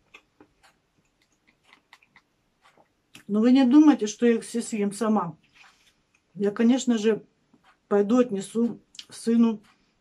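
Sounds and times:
faint chewing: 0.0s - 3.3s, 5.4s - 6.4s
mouth clicks: 0.0s - 3.3s.

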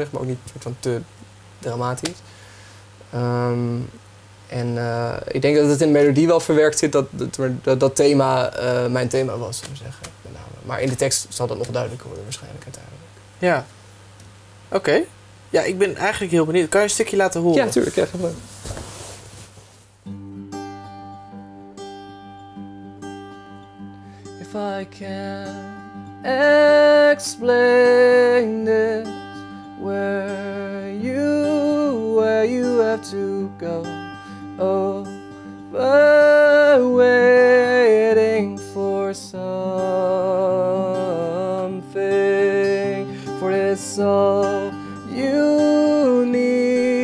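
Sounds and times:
acoustic guitar chords: 15.8s - 47.0s
man singing: 24.4s - 47.0s.

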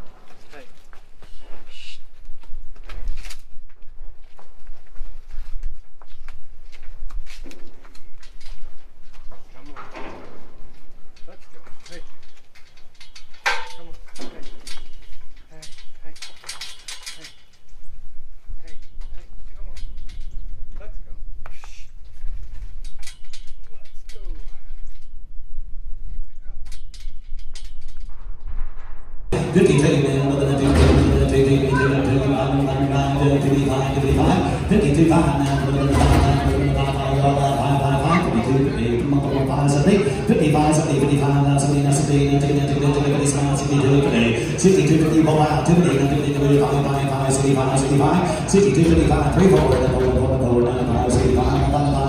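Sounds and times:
hooves clattering on trailer floor: 0.0s - 17.8s
metal gates rattling: 7.3s - 17.8s, 18.6s - 20.6s, 29.4s - 52.0s.

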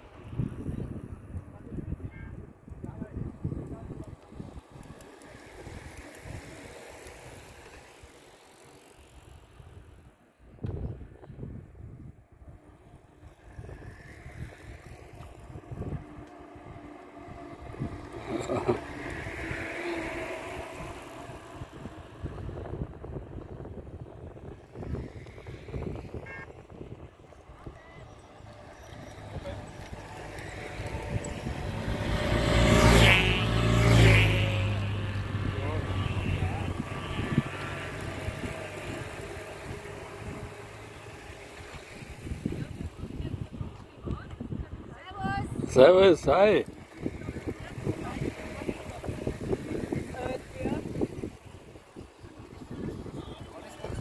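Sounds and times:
bicycle tyres on asphalt: 0.0s - 54.0s
cyclists' voices: 0.0s - 54.0s.

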